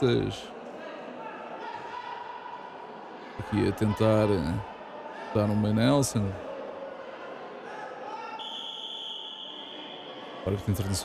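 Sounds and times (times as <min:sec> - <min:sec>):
referee's whistle blast: 0:08.4 - 0:10.1.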